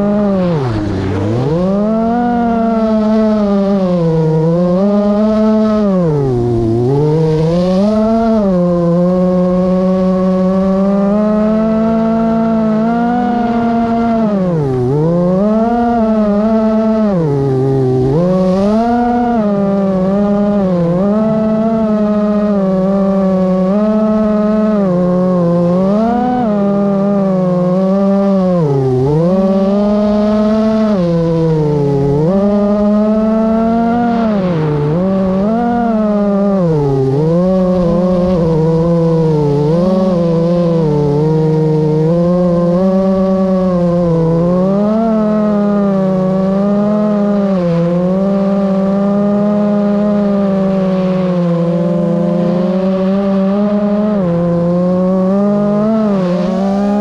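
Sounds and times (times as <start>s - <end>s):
drone propellers whining: 0.0s - 57.0s.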